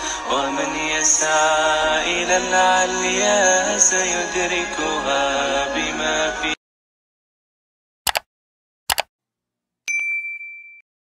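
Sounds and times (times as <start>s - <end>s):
notification bell ding: 9.9s - 10.8s.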